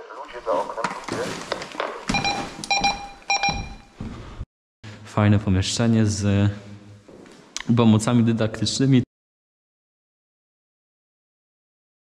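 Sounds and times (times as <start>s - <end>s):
electronic alarm beeping: 2.1s - 3.9s.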